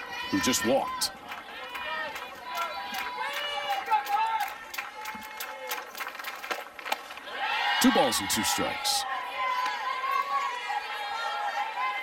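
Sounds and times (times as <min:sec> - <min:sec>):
sharp claps: 0:01.2 - 0:07.2.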